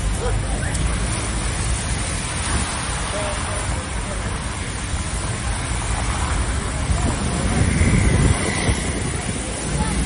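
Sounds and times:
faint voices: 0.0s - 10.0s
vehicle rumbling on muddy street: 0.0s - 10.0s.

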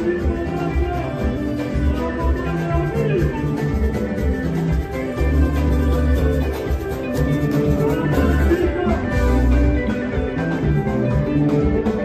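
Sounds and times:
rumba band with guitars: 0.0s - 12.0s.

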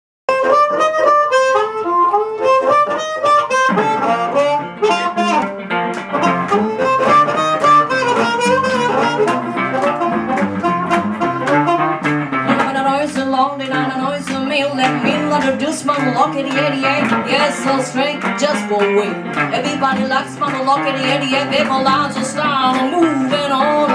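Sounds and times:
band playing driving rhythm: 0.3s - 23.9s
blues harmonica riff: 0.3s - 23.9s.

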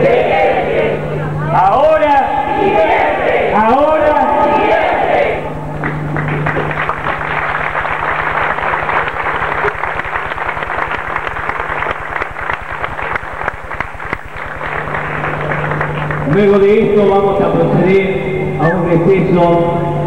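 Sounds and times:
low hum: 0.0s - 20.0s
crowd applauding: 5.8s - 16.8s.

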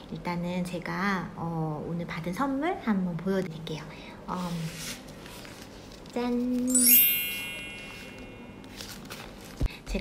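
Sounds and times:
sparkly bell-like chime: 6.7s - 8.8s.

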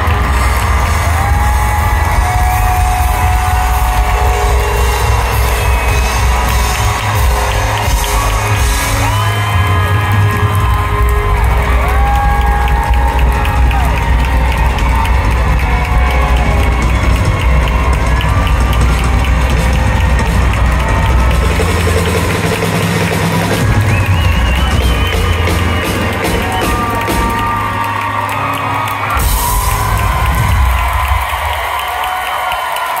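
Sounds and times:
live rock band playing: 0.0s - 31.7s
crowd cheering: 0.0s - 33.0s.

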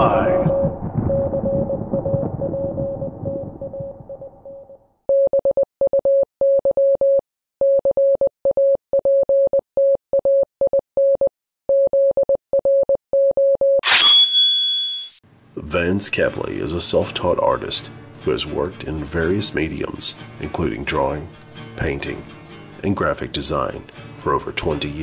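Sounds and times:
low rumble: 0.0s - 4.8s
morse code beeps: 5.1s - 13.8s
bright high electronic sound: 13.8s - 15.2s.

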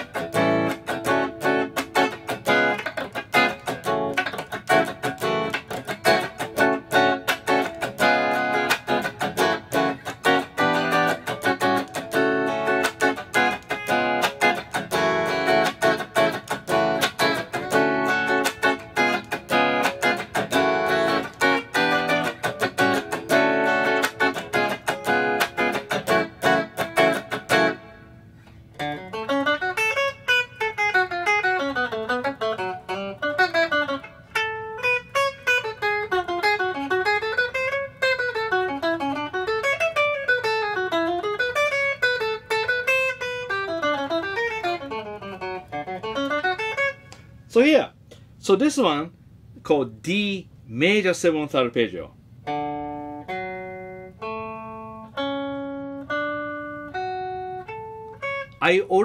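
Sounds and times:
electric guitar solo: 0.0s - 47.5s, 52.4s - 59.0s
electric guitar strumming chords: 0.0s - 48.2s, 52.2s - 59.0s.

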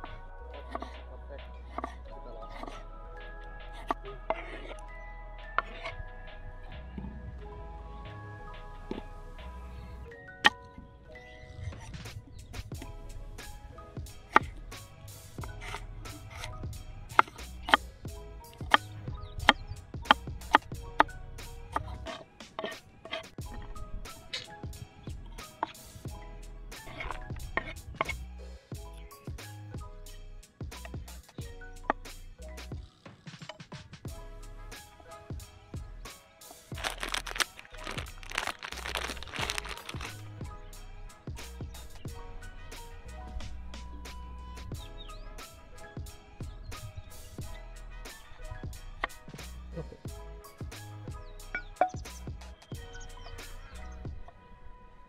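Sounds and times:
background music: 0.0s - 55.0s
plastic packet crinkling: 36.7s - 40.3s
dry noodles crunching: 36.7s - 40.4s.

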